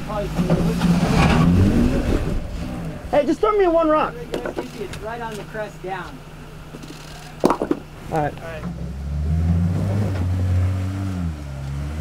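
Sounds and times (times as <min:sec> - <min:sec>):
engine idling low hum: 0:00.0 - 0:12.0.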